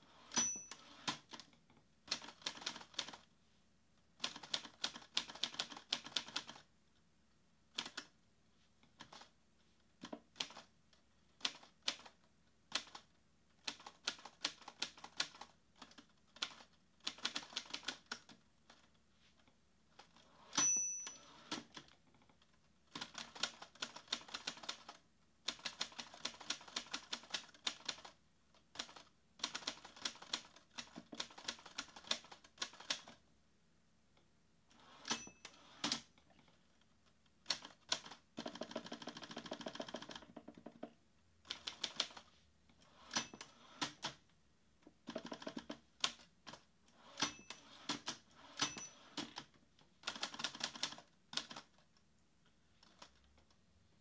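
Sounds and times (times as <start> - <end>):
typewriter margin bell ding: 0.2 - 1.1, 20.4 - 21.6, 35.0 - 35.7, 43.0 - 43.7, 47.2 - 49.2.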